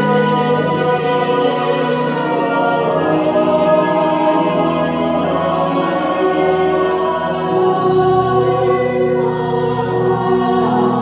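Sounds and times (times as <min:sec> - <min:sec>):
church choir singing chords: 0:00.0 - 0:11.0
organ: 0:00.0 - 0:11.0.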